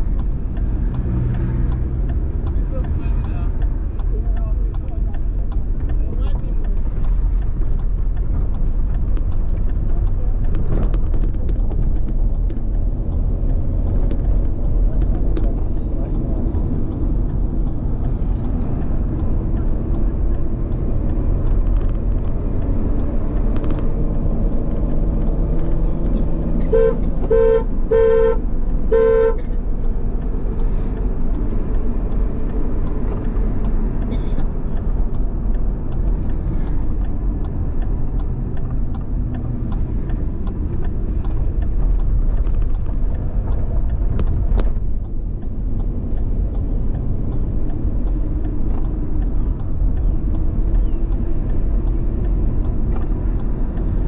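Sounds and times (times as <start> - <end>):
car engine and road rumble: 0.0 - 54.0
car horn tooting: 26.6 - 29.5.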